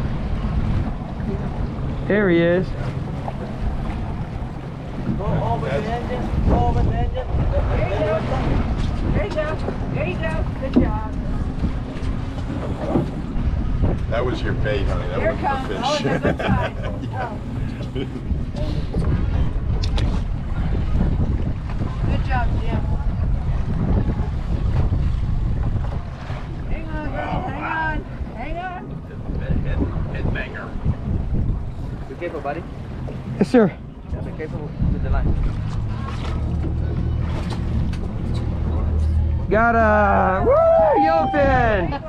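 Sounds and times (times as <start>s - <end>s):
boat engine rumble: 0.0s - 42.0s
wind noise on microphone: 0.0s - 42.0s.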